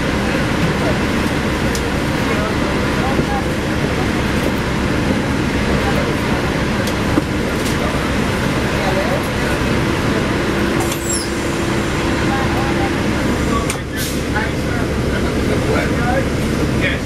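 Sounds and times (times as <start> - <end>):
bus engine rumbling: 0.0 - 17.0.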